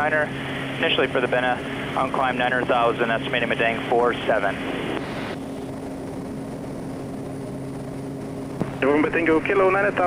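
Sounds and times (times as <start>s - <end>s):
low hum: 0.0s - 10.0s
turboprop engine droning: 0.0s - 10.0s.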